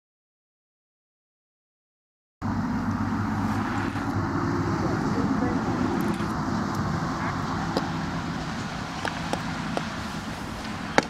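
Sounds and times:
outdoor background rumble: 2.4s - 11.0s.

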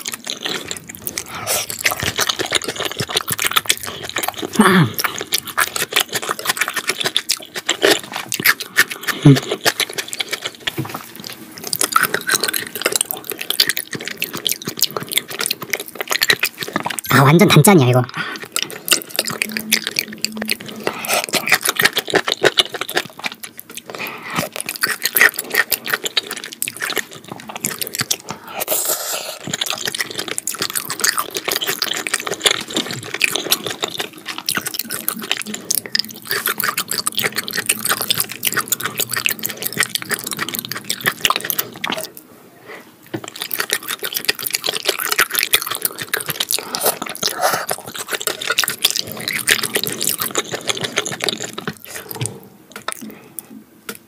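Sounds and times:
wet chewing and lip smacking: 0.0s - 42.3s, 43.1s - 54.0s.

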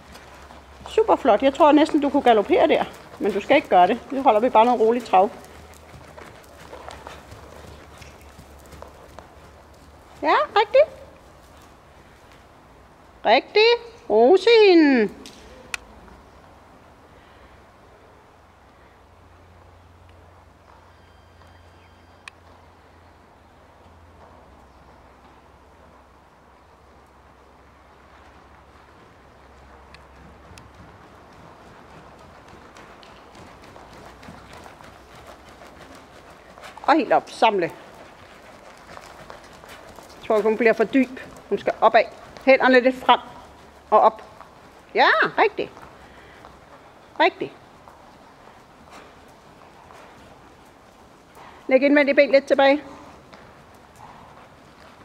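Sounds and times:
horse hoofbeats on soft ground: 0.0s - 13.9s, 20.2s - 55.0s.

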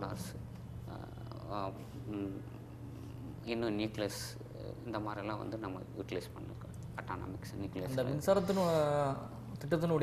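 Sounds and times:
low electrical hum: 0.0s - 10.0s
man speaking: 3.4s - 10.0s.

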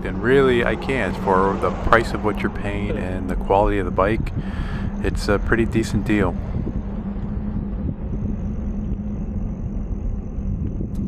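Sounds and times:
tyres rolling on asphalt: 0.0s - 8.8s
steady electric hum: 0.0s - 11.0s.

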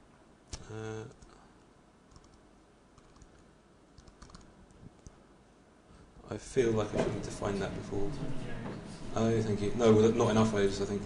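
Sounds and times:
computer keyboard keystrokes: 2.1s - 2.4s, 3.0s - 3.4s, 4.0s - 5.2s.

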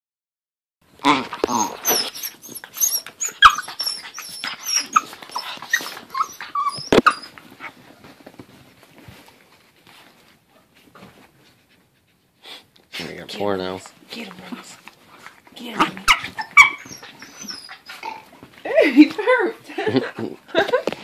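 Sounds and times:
dogs growling: 1.0s - 7.7s, 14.2s - 18.5s
dogs whining: 1.0s - 8.0s, 15.7s - 18.5s
faint scuffles: 5.0s - 11.9s.

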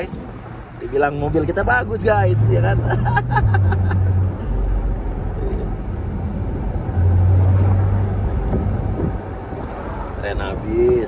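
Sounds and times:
car engine hum: 0.0s - 11.0s
road and wind noise: 0.0s - 11.0s.

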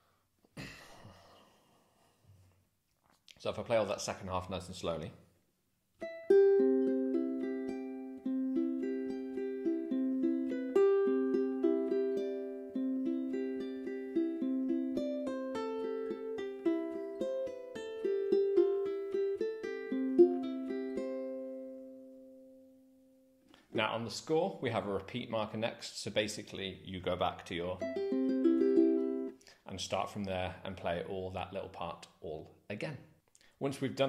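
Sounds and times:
fingerstyle ukulele: 6.0s - 22.4s, 27.5s - 29.4s.

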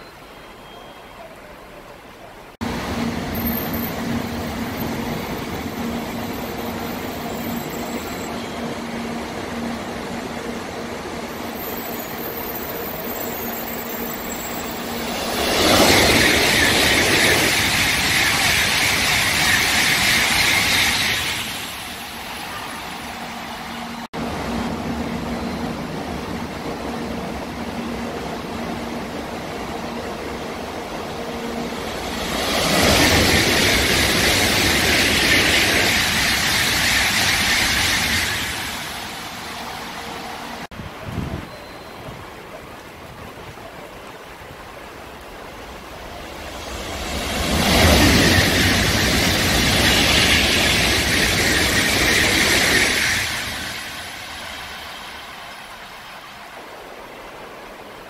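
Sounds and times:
high-speed train rushing past: 2.5s - 58.0s.

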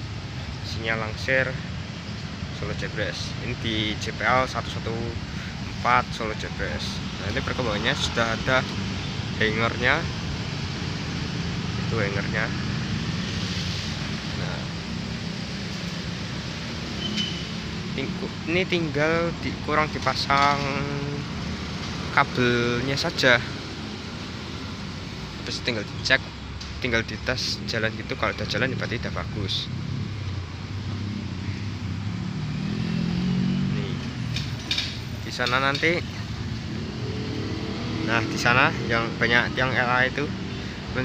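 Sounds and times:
cars and motorcycles passing: 0.0s - 41.0s
road traffic rumble: 0.0s - 41.0s
vehicle engine hum: 0.0s - 41.0s.

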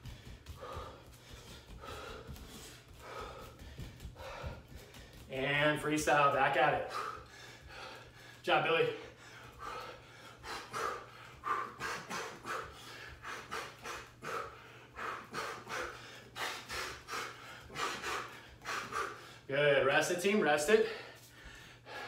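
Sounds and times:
man breathing hard: 0.0s - 5.3s, 6.1s - 19.5s, 20.6s - 22.0s.

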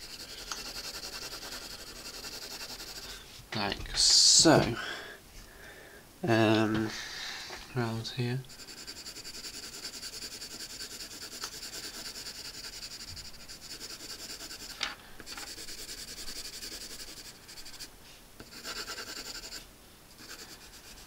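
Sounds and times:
pencil shading on paper: 0.0s - 3.1s, 8.5s - 14.8s, 15.4s - 19.6s, 20.2s - 21.0s.

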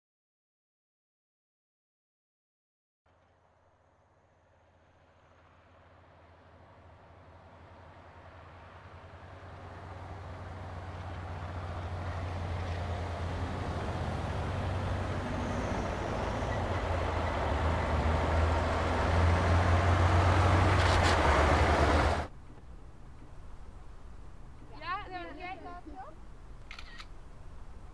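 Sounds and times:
vehicle engine and road noise: 3.1s - 27.9s.

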